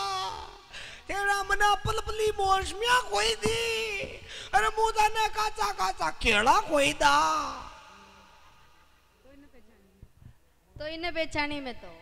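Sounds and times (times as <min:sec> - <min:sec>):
man's voice through loudspeakers: 0:00.0 - 0:08.0.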